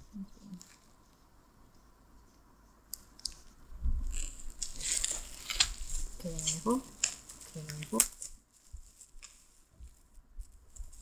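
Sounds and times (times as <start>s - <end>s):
plastic packaging crinkling: 4.0s - 11.0s.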